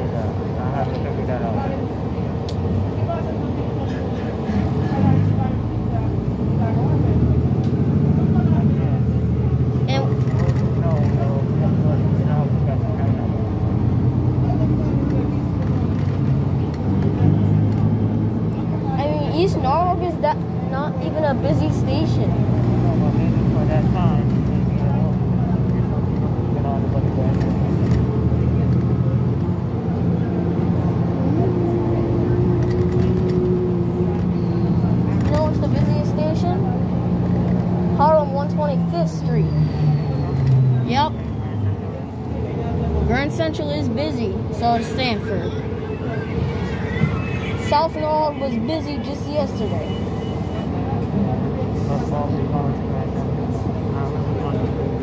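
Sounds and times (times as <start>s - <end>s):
bus engine drone: 0.0s - 55.0s
indistinct voices: 0.0s - 55.0s.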